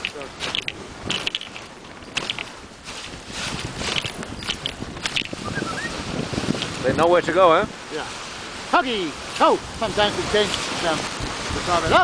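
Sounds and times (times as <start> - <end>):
crunches and knocks: 0.0 - 5.4
sled runners scraping on snow: 0.0 - 12.0.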